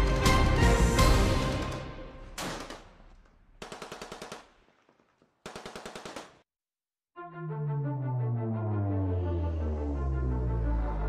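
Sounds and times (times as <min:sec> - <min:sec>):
machine-gun fire: 0:02.4 - 0:06.4.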